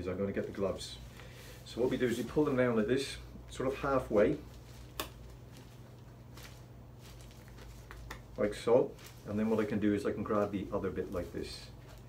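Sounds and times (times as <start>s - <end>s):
gloves rustling: 0.0s - 12.0s
low room hum: 0.0s - 12.0s.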